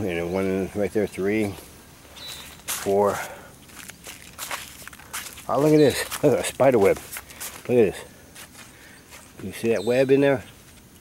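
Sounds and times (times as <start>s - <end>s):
footsteps on plastic sheeting: 2.3s - 9.6s.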